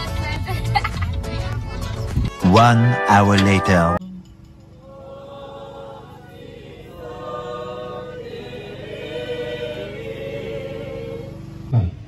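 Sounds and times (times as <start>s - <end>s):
voices singing a hymn: 4.8s - 11.8s.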